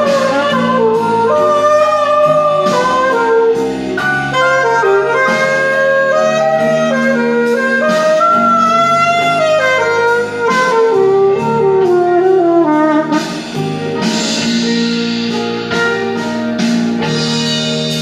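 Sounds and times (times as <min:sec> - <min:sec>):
backing track: 0:00.0 - 0:18.0
saxophone blues solo: 0:00.0 - 0:18.0.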